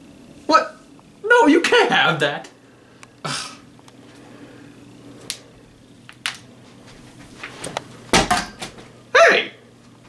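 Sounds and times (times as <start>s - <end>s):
plastic bottle landing on floor: 8.1s - 8.8s.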